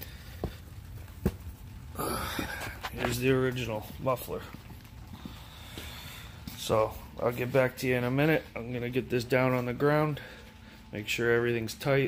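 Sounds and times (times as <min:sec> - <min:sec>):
low steady background rumble: 0:00.0 - 0:12.0.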